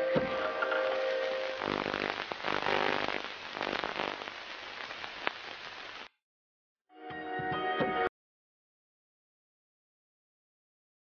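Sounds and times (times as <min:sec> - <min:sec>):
dense crackling noise: 0:00.0 - 0:06.2.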